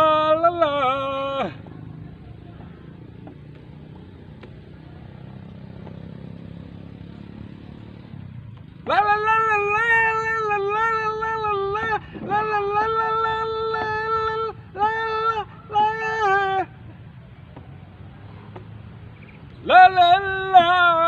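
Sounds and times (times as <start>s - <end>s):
man singing a wavering wail: 0.0s - 1.7s, 8.8s - 17.0s, 19.6s - 21.0s.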